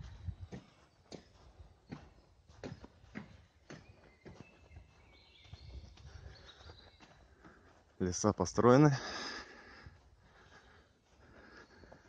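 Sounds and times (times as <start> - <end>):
faint footsteps walking: 0.0 - 12.0.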